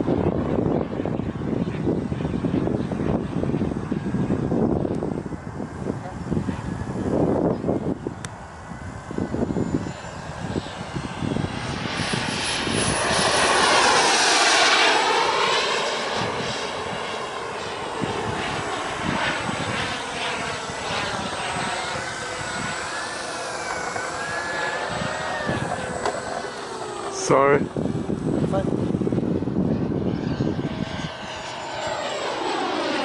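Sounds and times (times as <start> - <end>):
jet engine whine overhead: 0.0 - 33.0.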